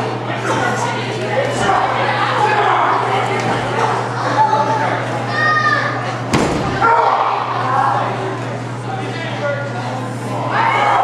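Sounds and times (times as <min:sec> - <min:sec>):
crowd voices in large hall: 0:00.0 - 0:11.0
body slamming onto mat: 0:06.3 - 0:06.8
high shout: 0:06.8 - 0:07.6.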